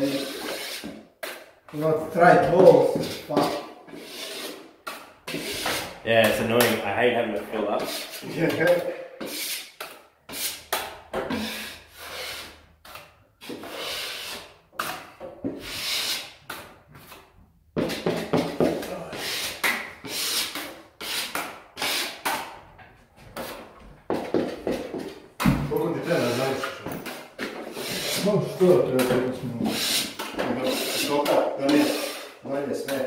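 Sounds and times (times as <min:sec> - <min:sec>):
knife scraping plaster: 0:00.0 - 0:01.5, 0:02.8 - 0:06.4, 0:07.7 - 0:15.0, 0:26.0 - 0:33.0.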